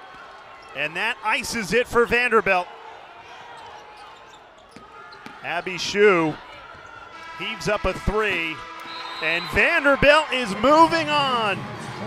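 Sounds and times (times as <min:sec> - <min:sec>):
basketball arena ambience: 0:00.0 - 0:12.0.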